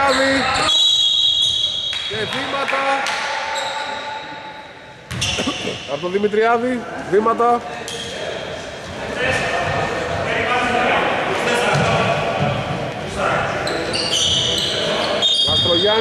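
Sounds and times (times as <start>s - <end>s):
players' voices and shouts echoing: 0.0s - 16.0s
sneaker squeaks on wooden court: 5.1s - 5.9s, 13.6s - 16.0s.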